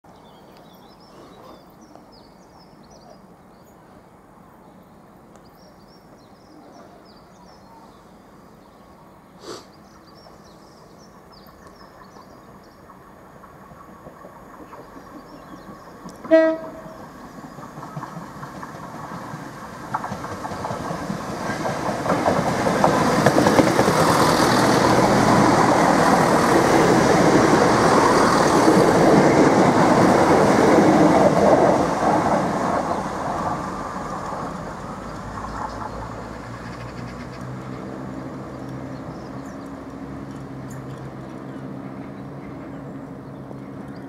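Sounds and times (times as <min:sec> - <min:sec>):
diesel train engines: 0:00.2 - 0:44.0
train wheels rumbling on rails: 0:09.9 - 0:44.0.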